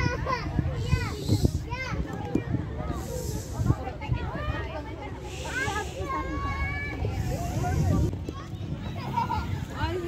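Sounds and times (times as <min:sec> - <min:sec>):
children's voices: 0:00.0 - 0:10.0.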